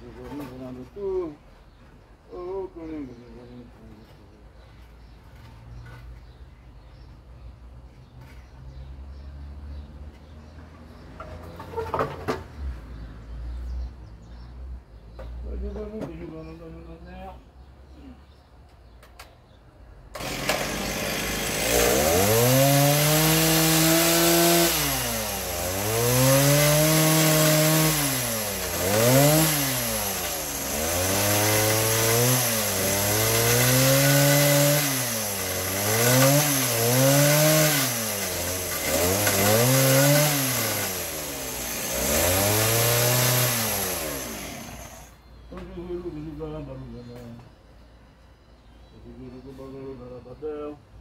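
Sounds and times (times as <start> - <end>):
rough cutting noise: 20.1 - 45.1
power tool motor revving: 20.2 - 45.1.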